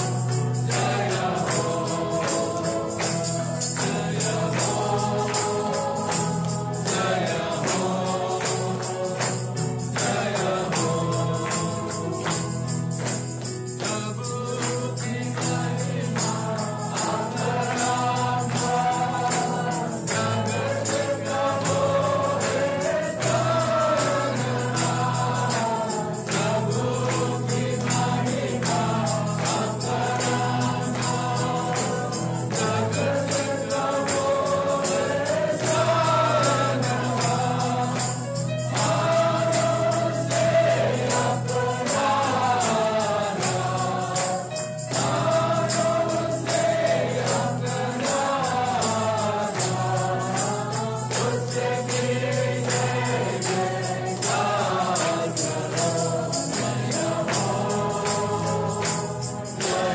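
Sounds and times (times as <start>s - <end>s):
choir singing: 0.0s - 59.9s
jingling percussion: 0.0s - 59.9s.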